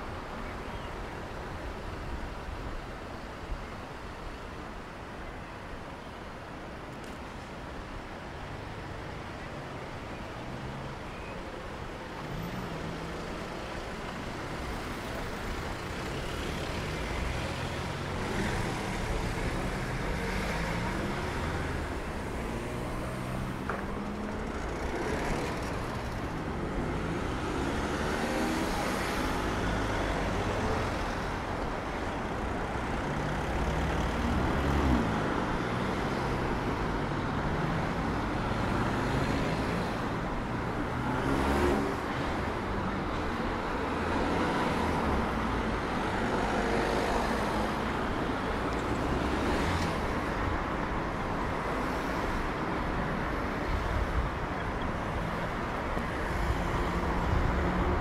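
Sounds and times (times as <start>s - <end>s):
cars driving past: 12.2s - 58.0s.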